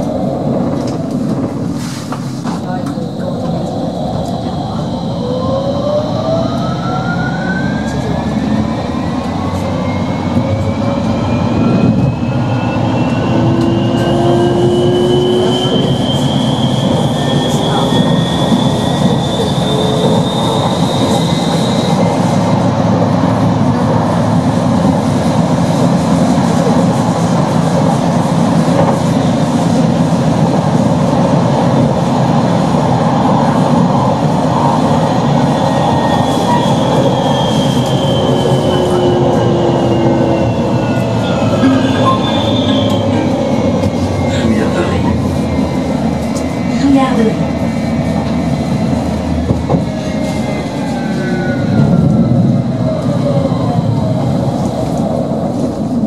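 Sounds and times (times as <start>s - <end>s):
tram wheels rumbling on rail: 0.0s - 56.0s.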